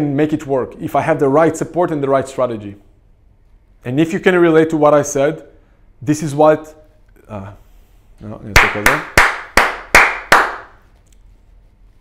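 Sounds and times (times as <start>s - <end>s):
man clapping hands: 8.6s - 10.8s.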